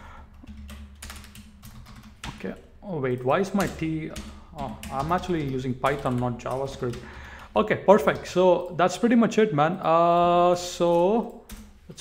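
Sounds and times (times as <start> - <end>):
typing on computer keyboard: 0.3 - 7.3, 10.8 - 11.8.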